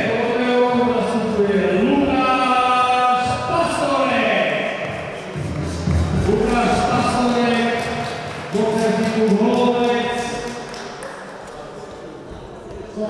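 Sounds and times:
music: 0.0s - 11.3s
man announcing over loudspeaker: 0.0s - 13.0s.

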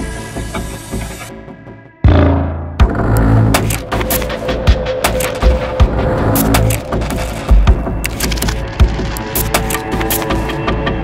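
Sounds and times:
dense horror music bed: 0.0s - 11.0s
heavy low booming hits: 2.0s - 3.0s.

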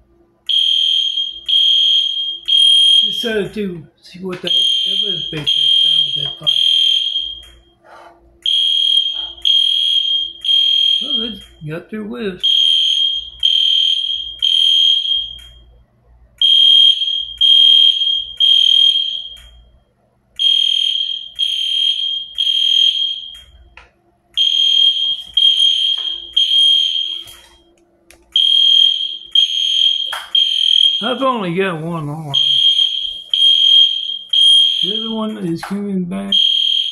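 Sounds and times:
smoke alarm high beeps: 0.5s - 3.3s, 4.5s - 7.7s, 8.4s - 11.6s, 12.4s - 15.7s, 16.4s - 19.7s, 20.4s - 23.7s, 24.4s - 27.6s, 28.3s - 31.4s, 32.3s - 35.4s, 36.3s - 36.9s.

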